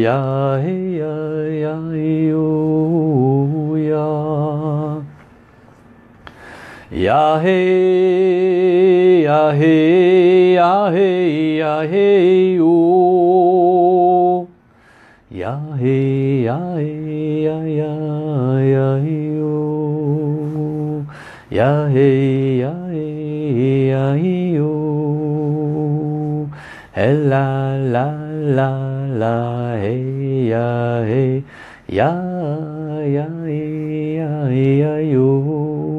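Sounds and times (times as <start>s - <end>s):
man chanting: 15.3s - 35.9s.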